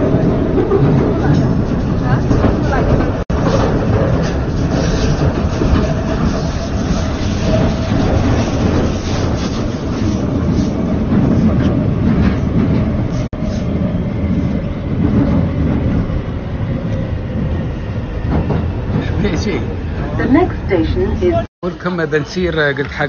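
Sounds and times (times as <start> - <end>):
train wheels rumbling on rail: 0.0 - 23.0.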